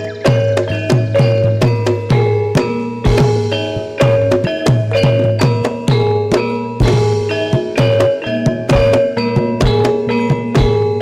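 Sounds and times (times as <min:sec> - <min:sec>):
gamelan metallophones: 0:00.0 - 0:11.0.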